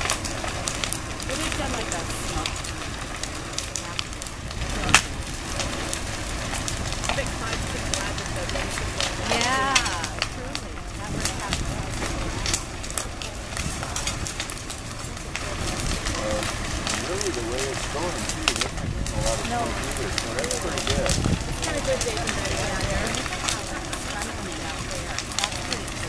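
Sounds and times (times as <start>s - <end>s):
fire crackling and popping: 0.0s - 26.0s
fire roaring: 0.0s - 26.0s
sharp crack: 0.0s - 26.0s.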